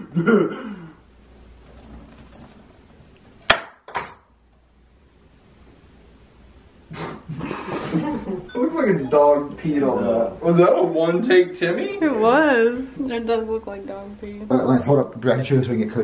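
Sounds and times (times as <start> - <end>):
voices: 7.8 - 16.0.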